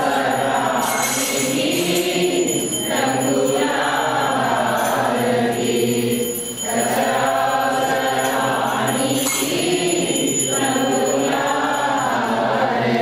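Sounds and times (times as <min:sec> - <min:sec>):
group singing devotional song: 0:00.0 - 0:13.0.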